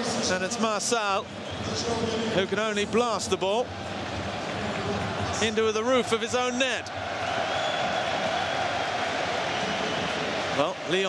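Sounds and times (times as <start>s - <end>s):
stadium crowd voices: 0.0s - 11.0s.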